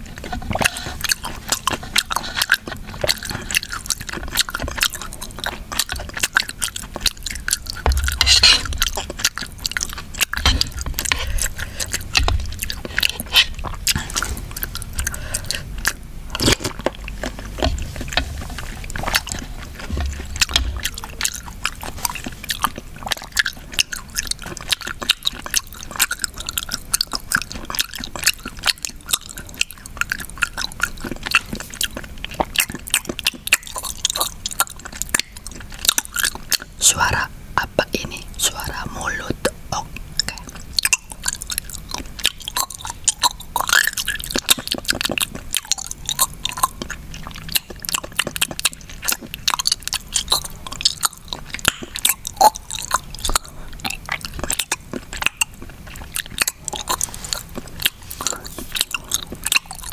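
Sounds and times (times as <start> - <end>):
wet chewing and mouth sounds: 0.0 - 59.9.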